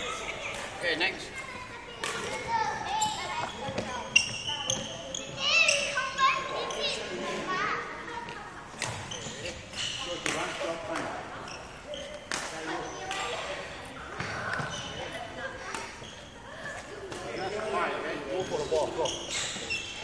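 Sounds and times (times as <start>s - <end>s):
voices echoing in a hall: 0.0s - 20.0s.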